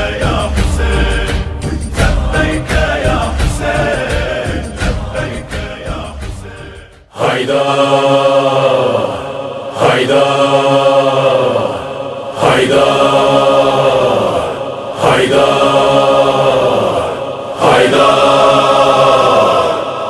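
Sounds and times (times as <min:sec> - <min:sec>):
voices chanting a long note: 0:00.0 - 0:20.0.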